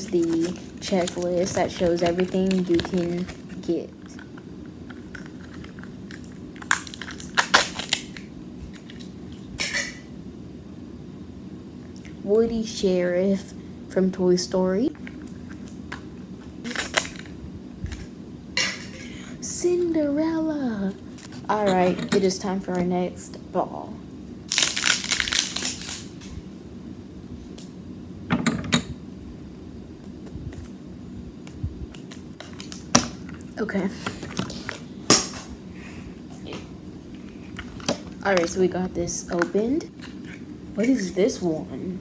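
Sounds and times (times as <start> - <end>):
plastic packaging crinkling: 0.0 - 9.2, 16.6 - 18.1, 24.5 - 26.2, 31.9 - 33.5.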